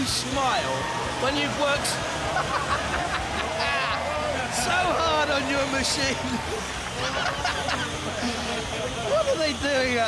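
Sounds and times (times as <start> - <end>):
arena crowd noise: 0.0 - 10.0
man talking: 4.5 - 6.4, 7.0 - 10.0
man laughing: 6.4 - 8.6.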